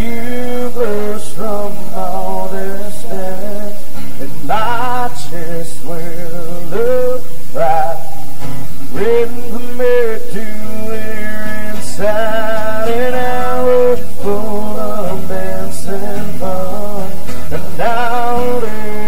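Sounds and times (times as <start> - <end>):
acoustic guitars playing: 0.0 - 19.0
man singing: 0.0 - 19.0.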